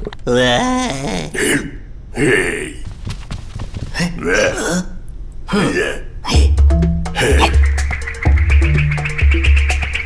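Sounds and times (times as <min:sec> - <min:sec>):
cartoon voice grunts and babble: 0:00.2 - 0:02.6, 0:04.0 - 0:06.6, 0:07.2 - 0:07.6.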